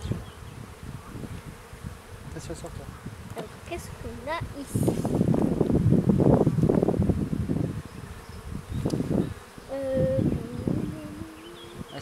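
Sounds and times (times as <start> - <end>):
bee humming close by: 0.0 - 12.0
bees buzzing: 0.0 - 12.0.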